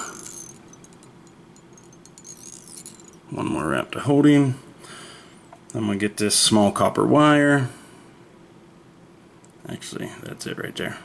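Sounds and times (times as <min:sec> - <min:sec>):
thread squeaking: 0:00.0 - 0:03.3
low room hiss: 0:00.0 - 0:11.0.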